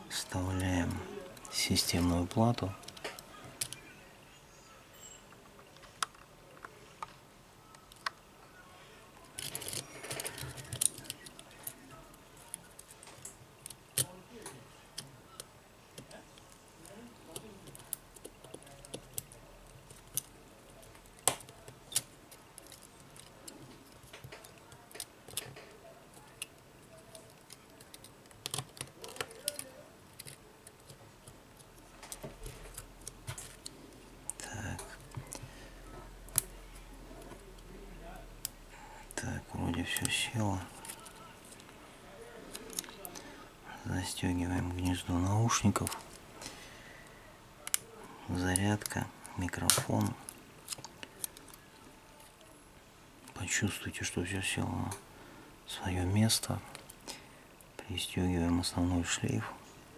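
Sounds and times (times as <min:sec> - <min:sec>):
phone parts clicking and scraping: 0:09.2 - 0:14.1, 0:17.3 - 0:35.5, 0:38.4 - 0:41.8, 0:42.4 - 0:43.3, 0:47.6 - 0:52.4.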